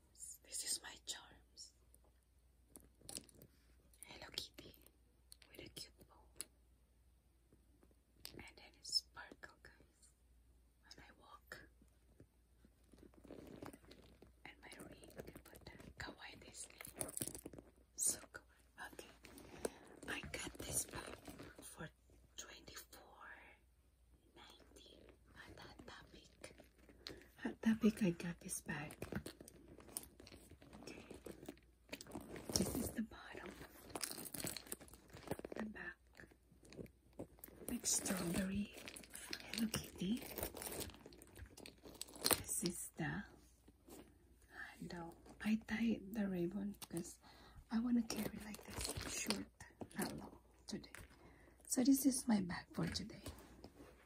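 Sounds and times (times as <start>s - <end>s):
woman whispering: 0.0s - 1.8s, 4.0s - 6.5s, 8.3s - 10.1s, 10.8s - 11.7s, 14.4s - 17.1s, 18.0s - 19.4s, 20.0s - 23.6s, 24.2s - 26.6s, 27.4s - 29.1s, 32.5s - 33.8s, 35.5s - 36.3s, 37.7s - 40.3s, 42.4s - 43.4s, 44.5s - 51.0s, 51.7s - 53.4s
bag rubbing and rustling: 12.9s - 14.3s, 28.9s - 35.6s, 36.6s - 42.3s.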